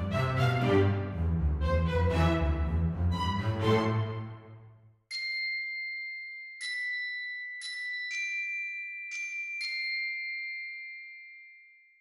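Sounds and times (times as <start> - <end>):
bell-like chime ringing: 5.1 - 12.0.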